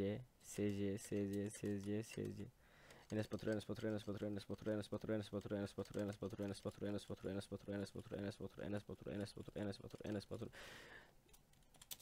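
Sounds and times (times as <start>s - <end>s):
man speaking: 0.0s - 10.6s
keyboard keys clicking: 0.6s - 4.7s, 11.3s - 12.0s.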